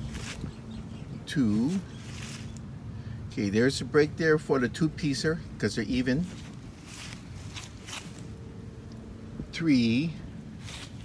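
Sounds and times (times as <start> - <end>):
footsteps on grass: 0.0 - 0.7, 1.5 - 2.7, 6.1 - 8.5, 10.5 - 11.0
faint steady hum: 0.0 - 11.0
low outdoor rumble: 0.0 - 11.0.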